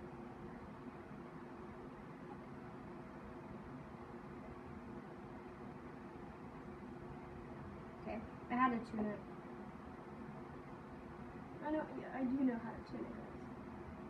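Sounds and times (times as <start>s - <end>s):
background hum and hiss: 0.0s - 14.0s.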